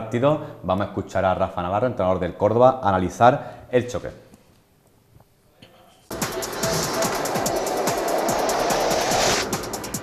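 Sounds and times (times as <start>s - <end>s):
swelling whoosh: 6.1s - 10.0s
techno jingle beat: 6.1s - 10.0s.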